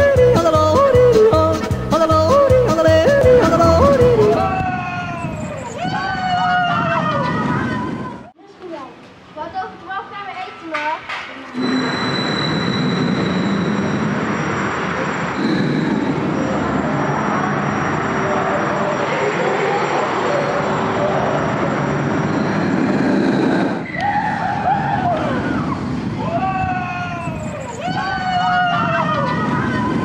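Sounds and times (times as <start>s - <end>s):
people's voices: 0.0s - 12.0s, 14.9s - 22.7s
roller coaster train on track: 0.0s - 30.0s.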